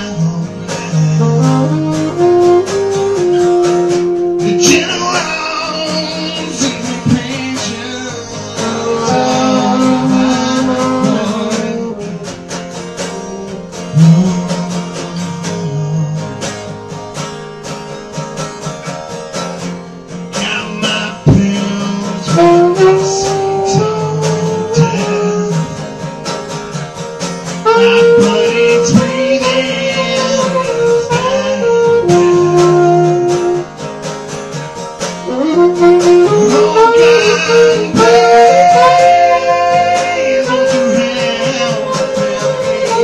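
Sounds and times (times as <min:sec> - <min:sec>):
saxophone melody: 0:00.0 - 0:18.0, 0:20.4 - 0:43.0
strummed acoustic guitar: 0:00.0 - 0:43.0.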